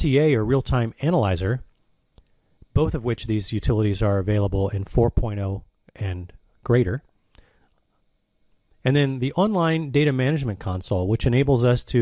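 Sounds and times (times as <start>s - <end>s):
man speaking: 0.0s - 1.7s, 2.7s - 7.1s, 8.8s - 12.0s.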